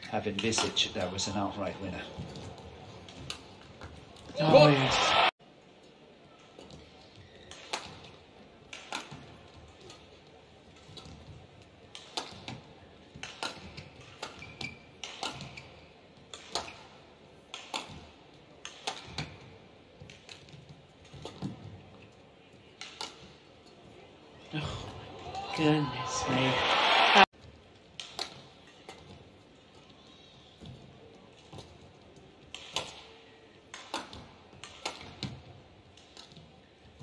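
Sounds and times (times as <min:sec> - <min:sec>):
rackets hitting shuttlecock: 0:00.3 - 0:04.7, 0:06.5 - 0:21.9, 0:22.8 - 0:23.4, 0:27.9 - 0:30.0, 0:32.4 - 0:37.0.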